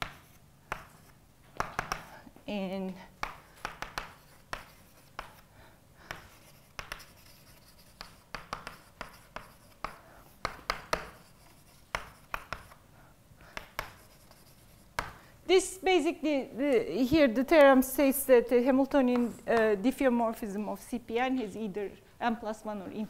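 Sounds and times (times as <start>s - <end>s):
chalk writing on blackboard: 0.0s - 2.2s, 3.2s - 12.8s, 13.4s - 15.2s.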